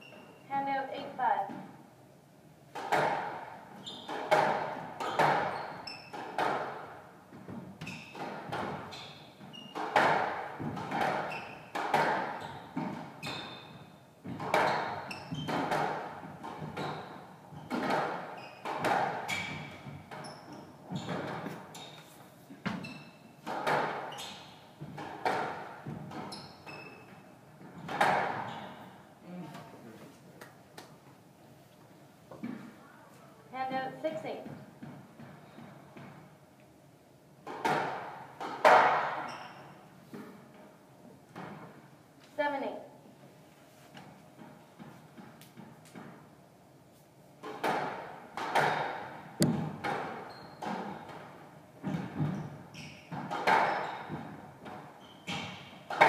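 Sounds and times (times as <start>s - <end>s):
squash ball hitting rackets and walls: 2.7s - 29.1s, 34.4s - 36.4s, 37.4s - 41.9s, 44.0s - 46.4s, 47.4s - 56.0s
shoes squeaking on wooden floor: 3.8s - 6.6s, 7.3s - 25.0s, 25.8s - 29.0s, 49.4s - 56.0s.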